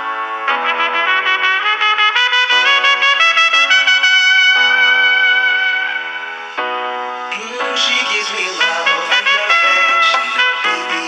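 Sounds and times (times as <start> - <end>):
pop music with trumpet lead: 0.0 - 11.0.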